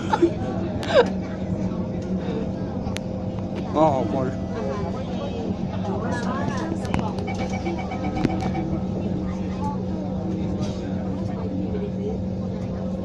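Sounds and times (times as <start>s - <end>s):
metro train humming: 0.0s - 13.0s.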